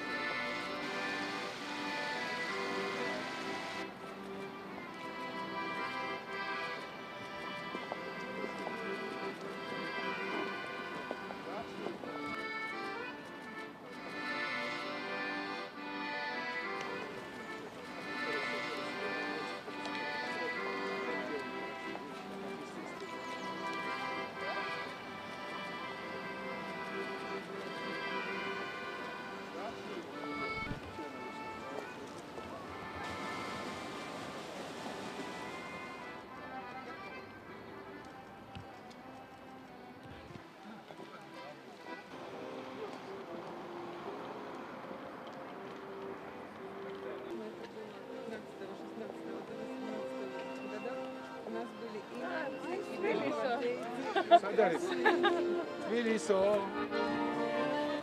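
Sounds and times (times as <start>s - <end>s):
accordion music: 0.0s - 58.0s.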